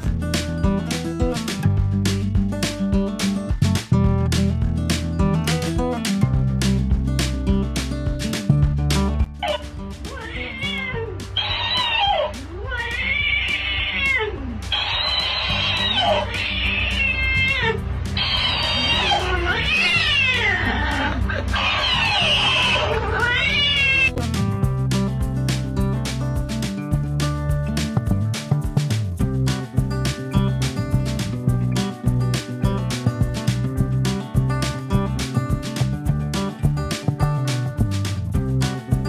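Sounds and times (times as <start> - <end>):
background music: 0.0 - 39.0
cat meowing and yowling: 9.4 - 24.2.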